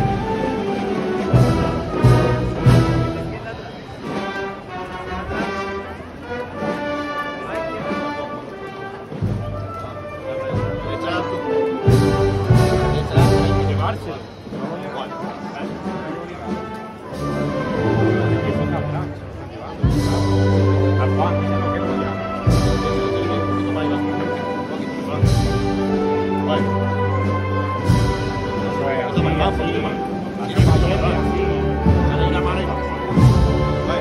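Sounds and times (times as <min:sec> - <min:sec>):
heavy drum beats: 0:00.0 - 0:05.6, 0:11.8 - 0:18.7, 0:19.8 - 0:23.8, 0:25.1 - 0:34.0
wind band playing march: 0:00.0 - 0:34.0.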